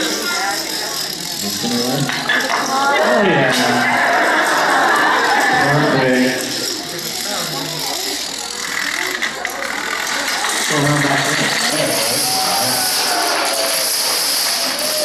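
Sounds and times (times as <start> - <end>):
audience chatter: 0.0 - 15.0
dominoes clattering: 0.0 - 15.0.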